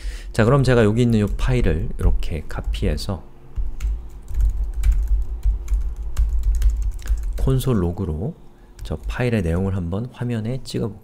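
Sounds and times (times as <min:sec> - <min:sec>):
typing on computer keyboard: 0:03.6 - 0:07.7, 0:08.8 - 0:09.3.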